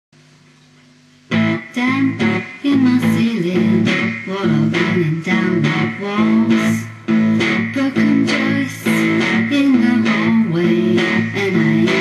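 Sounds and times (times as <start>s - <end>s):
guitar chord ringing: 1.3s - 12.0s
guitar strummed chords: 1.3s - 12.0s.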